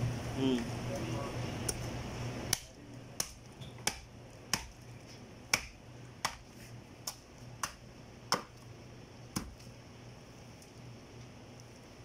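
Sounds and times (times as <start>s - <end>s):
knife chopping on wooden block: 2.5s - 4.8s, 5.5s - 8.6s, 9.3s - 9.6s.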